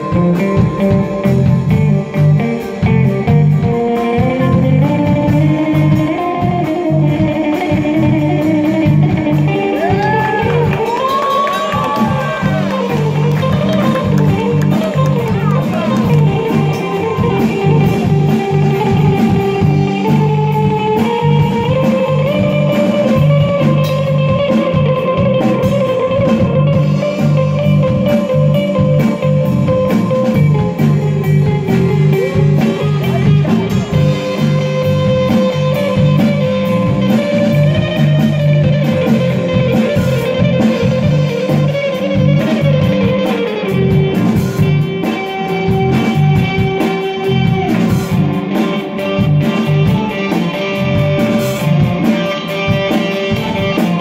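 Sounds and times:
lead guitar sustained notes: 0:00.0 - 0:54.0
live rock band playing: 0:00.0 - 0:54.0
steady drum beat: 0:00.0 - 0:54.0.

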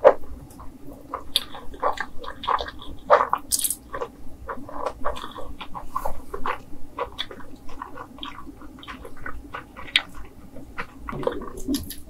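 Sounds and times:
wet chewing with mouth clicks: 0:00.0 - 0:12.0.

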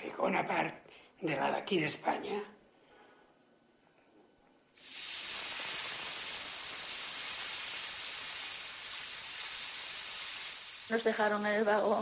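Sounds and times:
steam hissing: 0:04.8 - 0:12.0.

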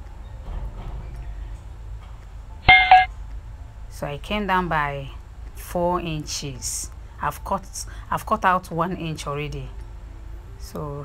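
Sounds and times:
two-tone electronic beep: 0:02.7 - 0:03.1.

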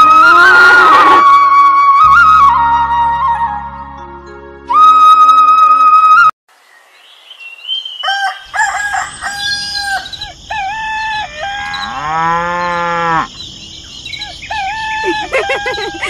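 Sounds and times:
rooster crowing: 0:08.0 - 0:13.3
cow mooing: 0:11.6 - 0:13.3.

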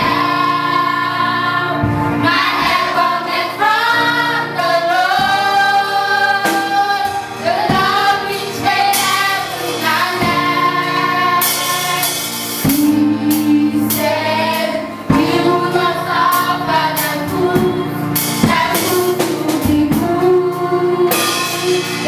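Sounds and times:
children's choir singing gospel: 0:00.0 - 0:22.0
woman singing lead: 0:00.0 - 0:22.0.

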